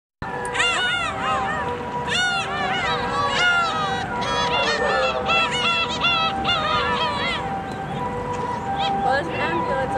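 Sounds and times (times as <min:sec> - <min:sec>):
flock of birds calling: 0:00.3 - 0:09.9.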